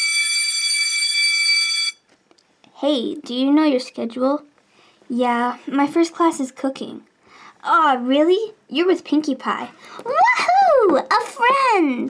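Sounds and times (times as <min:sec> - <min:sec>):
school bell ringing: 0:00.0 - 0:02.0.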